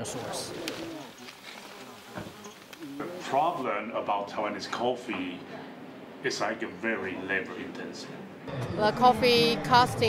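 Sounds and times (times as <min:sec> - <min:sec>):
insects buzzing: 0:00.2 - 0:03.7.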